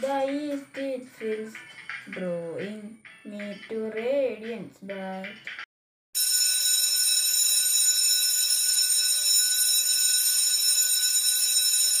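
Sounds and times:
electric bell ringing: 6.2 - 12.0.

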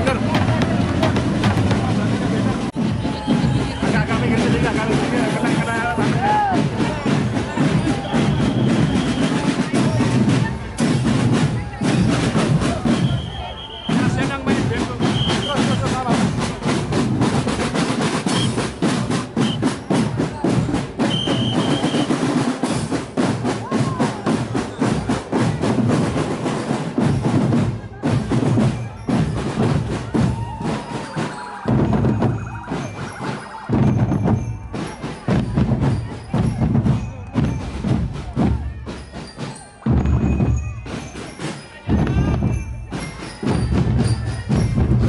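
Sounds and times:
snare drums fast strokes: 0.0 - 38.3
bass drums: 0.0 - 41.2, 41.9 - 45.0.

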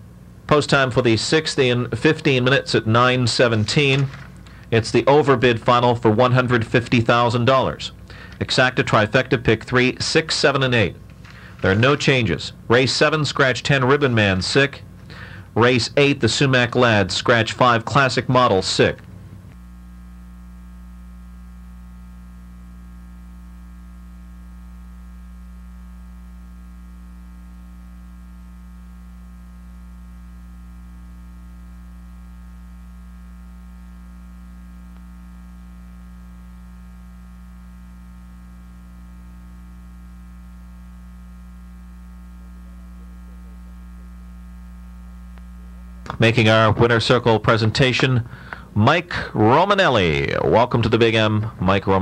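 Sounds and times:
electrical mains hum: 0.0 - 52.0.

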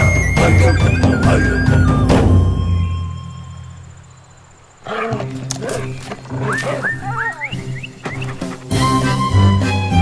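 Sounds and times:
background music: 0.0 - 3.8, 4.9 - 10.0.

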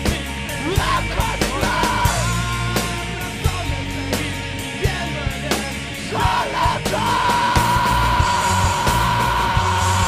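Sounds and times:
drums and distorted guitars: 0.0 - 10.0.

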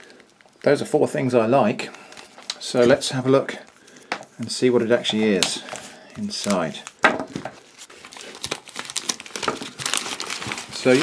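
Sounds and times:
wrapper crinkling: 0.0 - 11.0.

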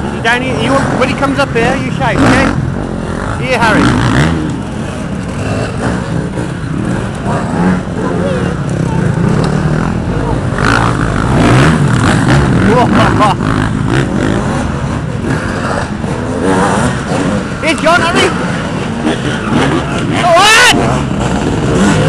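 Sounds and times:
dirt bike engines revving: 0.0 - 22.0.

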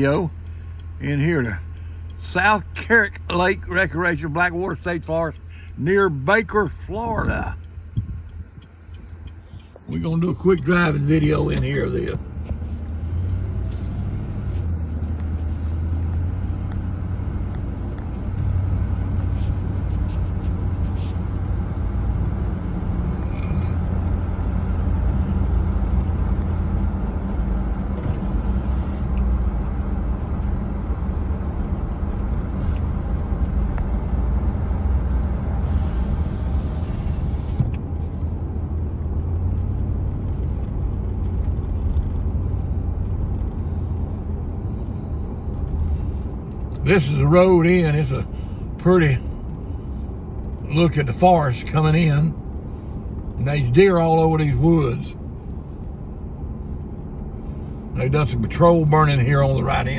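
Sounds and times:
engine and road drone: 0.0 - 59.9.

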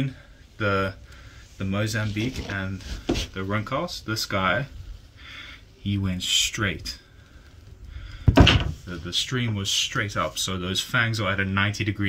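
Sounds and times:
sudden thump: 8.2 - 8.8.

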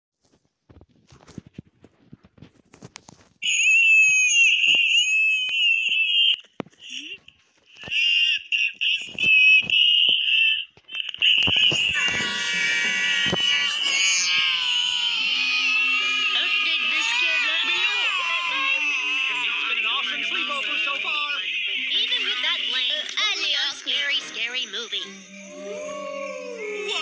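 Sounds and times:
overlapping voices: 11.0 - 24.4
high-pitched wavering crying voice: 11.3 - 27.0.

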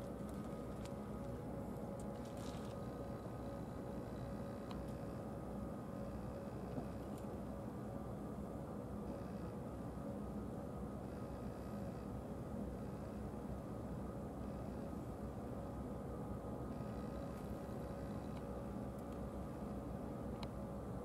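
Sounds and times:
steady mechanical hum: 0.0 - 21.0.

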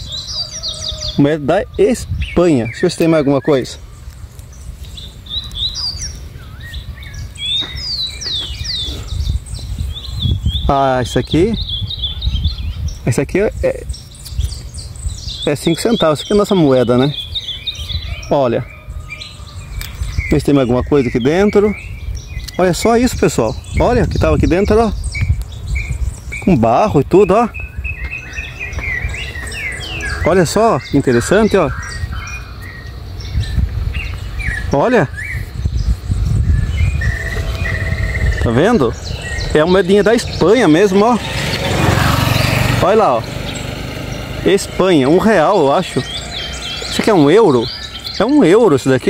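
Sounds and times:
birds chirping: 0.0 - 49.0
low rumble: 35.8 - 44.5.

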